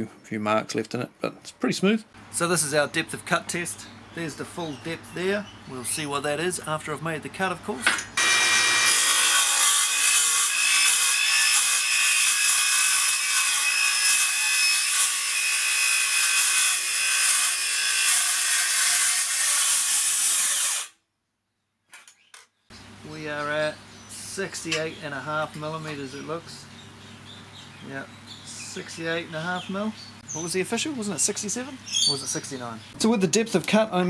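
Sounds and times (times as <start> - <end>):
circular saw cutting steel: 8.2 - 21.0.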